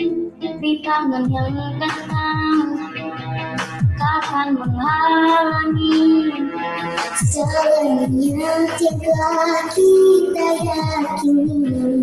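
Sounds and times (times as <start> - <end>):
child singing: 0.6 - 2.8, 4.0 - 6.4, 7.2 - 12.0.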